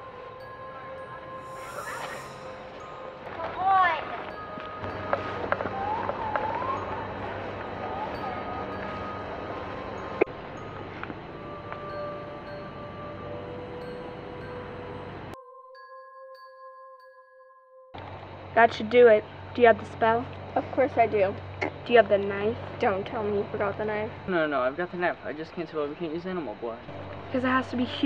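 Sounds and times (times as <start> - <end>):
chime-like bell notes: 0.0 - 3.2, 4.1 - 6.0, 8.0 - 17.8
steady hum: 0.0 - 3.4, 4.5 - 15.4
gliding voice-like sound: 1.5 - 2.7.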